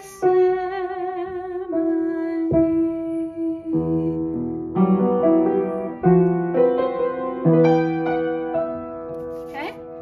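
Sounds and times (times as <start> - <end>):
woman singing with vibrato: 0.0 - 4.4
upright piano: 0.0 - 10.0.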